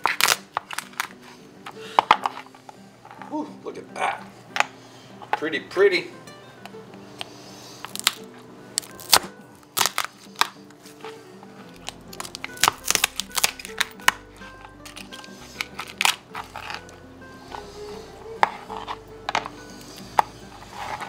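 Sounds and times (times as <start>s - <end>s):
knife cracking lobster shell: 0.0s - 1.2s, 7.2s - 10.8s, 11.7s - 16.9s
background music: 0.0s - 21.0s.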